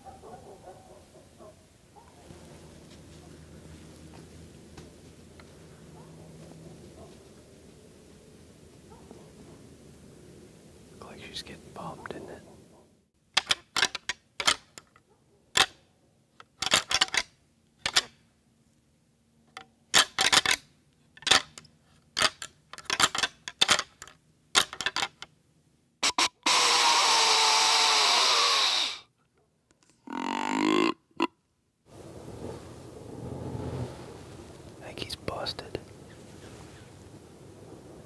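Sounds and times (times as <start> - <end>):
antlers clacking together: 13.4 - 15.0, 16.4 - 18.1, 19.9 - 20.6, 21.2 - 21.6, 22.2 - 25.3
loud hiss: 26.0 - 29.0
rising grunt-like call: 30.0 - 31.3.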